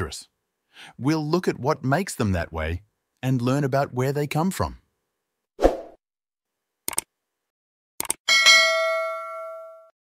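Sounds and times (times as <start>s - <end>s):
short clicks: 6.9s - 7.1s, 8.0s - 8.2s
bright bell ding: 8.3s - 9.9s.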